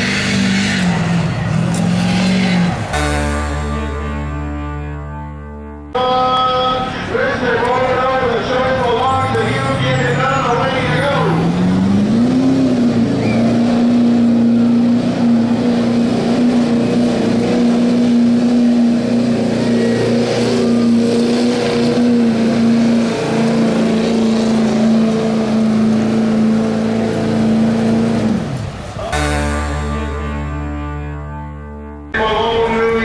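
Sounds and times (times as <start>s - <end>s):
diesel engine under full load: 0.0s - 33.0s.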